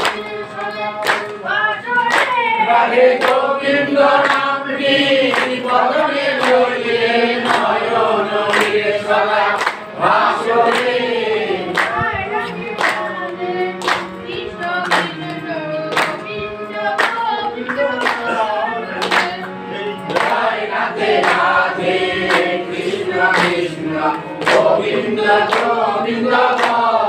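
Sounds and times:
group singing: 0:00.0 - 0:27.0
hand claps: 0:00.0 - 0:27.0.

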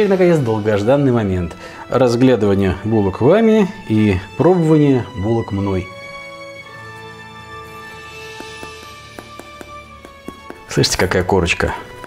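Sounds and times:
background music: 0:00.0 - 0:12.0
bread crust crackling: 0:07.8 - 0:11.6.

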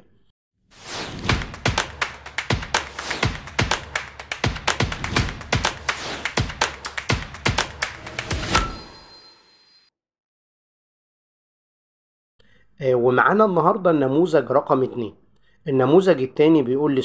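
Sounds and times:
percussive taps and thuds: 0:01.2 - 0:08.6
bright ringing chime: 0:08.5 - 0:09.9.

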